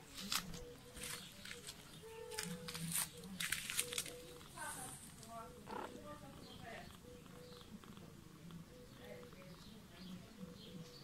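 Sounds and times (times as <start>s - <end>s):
cat purring: 4.2s - 11.0s.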